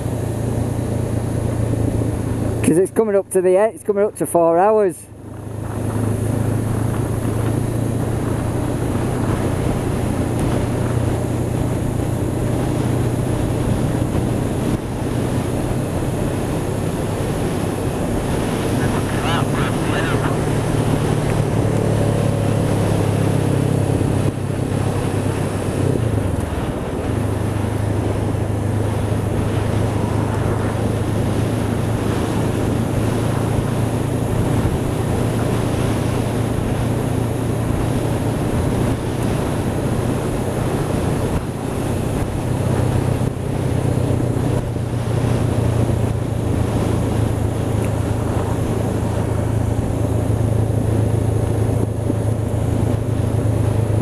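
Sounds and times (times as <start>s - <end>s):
motorcycle engine running: 0.0s - 54.0s
wind noise on microphone: 5.1s - 54.0s.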